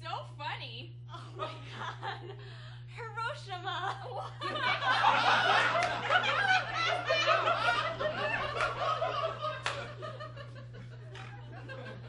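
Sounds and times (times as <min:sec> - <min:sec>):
audience laughing: 0:04.0 - 0:12.0.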